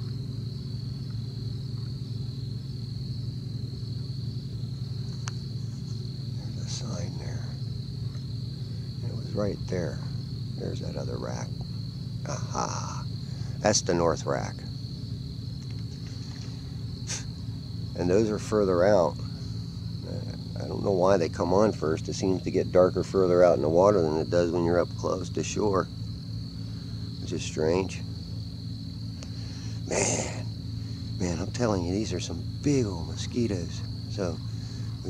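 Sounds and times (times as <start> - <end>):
crickets trilling: 0.0 - 35.0
insects chirping: 0.0 - 35.0
low hum: 0.0 - 35.0
low steady rumble: 0.0 - 35.0.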